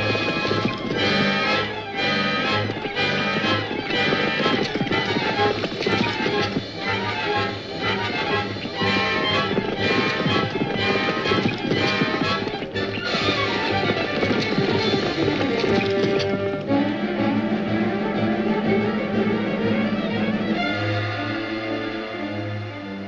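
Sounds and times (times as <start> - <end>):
horse hoofbeats galloping: 0.0 - 22.0
dramatic orchestral film music: 0.0 - 23.0.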